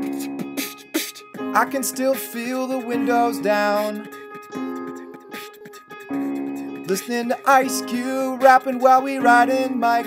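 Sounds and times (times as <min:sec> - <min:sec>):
digital piano chords: 0:00.0 - 0:10.0.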